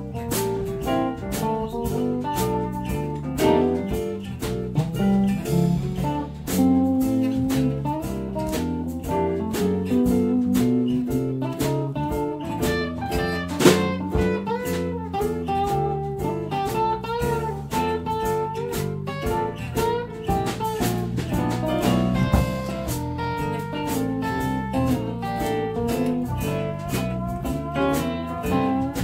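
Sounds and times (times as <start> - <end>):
live blues-rock band playing: 0.0 - 29.0.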